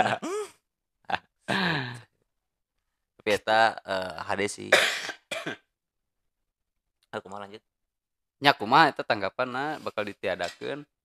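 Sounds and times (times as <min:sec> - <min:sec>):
man clearing his throat: 0:00.0 - 0:00.5, 0:01.5 - 0:02.0, 0:04.7 - 0:05.6.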